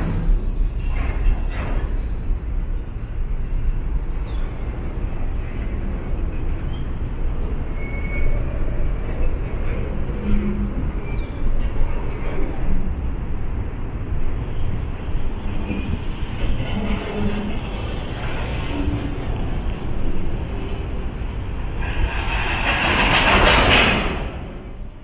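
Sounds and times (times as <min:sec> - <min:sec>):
train grinding noise: 0:00.0 - 0:25.0
train wheels rumbling on rails: 0:00.0 - 0:25.0.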